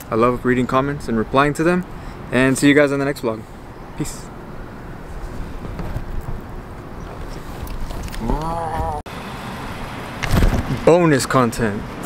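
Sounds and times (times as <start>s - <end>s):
man talking: 0.0s - 4.4s, 10.8s - 11.9s
road traffic hum: 0.0s - 12.0s.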